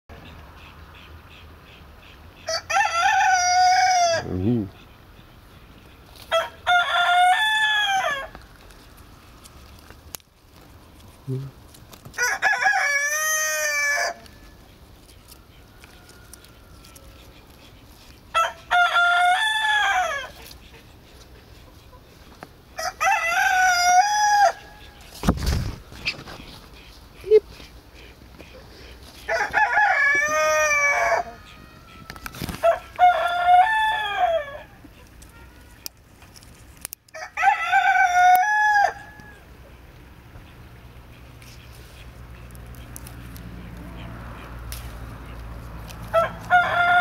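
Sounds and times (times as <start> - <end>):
rooster crowing: 2.5 - 4.3, 6.3 - 8.4, 12.2 - 14.5, 15.7 - 17.3, 18.3 - 20.4, 22.8 - 25.0, 29.3 - 34.8, 37.1 - 39.5, 46.1 - 47.0.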